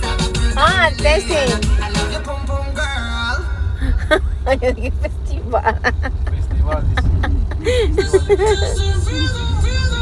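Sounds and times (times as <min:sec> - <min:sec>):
car engine and tyres rumbling: 0:00.0 - 0:10.0
people talking and laughing: 0:03.7 - 0:10.0.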